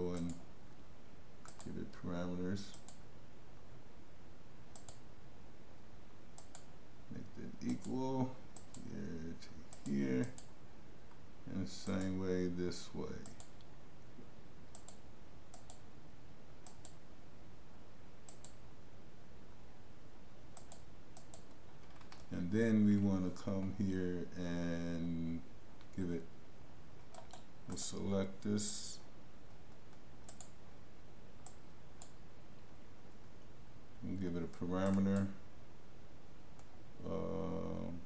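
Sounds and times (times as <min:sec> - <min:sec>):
computer mouse clicking: 0:00.1 - 0:00.4, 0:01.4 - 0:01.8, 0:02.7 - 0:03.0, 0:04.7 - 0:05.0, 0:06.4 - 0:06.7, 0:07.6 - 0:08.9, 0:09.7 - 0:10.5, 0:13.2 - 0:13.7, 0:14.7 - 0:15.8, 0:16.6 - 0:17.0, 0:18.3 - 0:18.6, 0:20.6 - 0:22.3, 0:27.0 - 0:27.8, 0:29.5 - 0:30.6, 0:31.4 - 0:32.2, 0:34.5 - 0:35.3.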